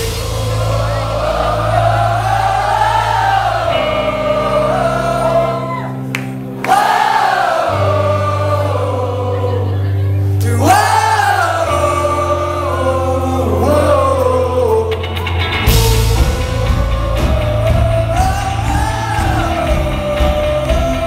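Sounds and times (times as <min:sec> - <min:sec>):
band crash: 0:00.0 - 0:04.5, 0:15.0 - 0:21.0
crowd singing along: 0:00.0 - 0:21.0
live folk-rock band: 0:10.2 - 0:21.0.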